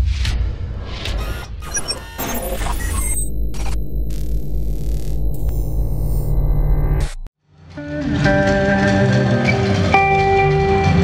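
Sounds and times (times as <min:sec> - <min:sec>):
glitchy crackling digital effects: 0:01.0 - 0:07.3
deep bass drone: 0:02.2 - 0:07.3
steady low pulse: 0:02.2 - 0:07.3.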